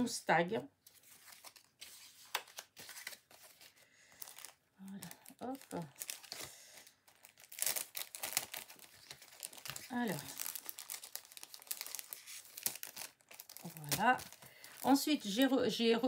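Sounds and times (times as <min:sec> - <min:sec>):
plastic packaging crinkling: 0:00.8 - 0:16.0.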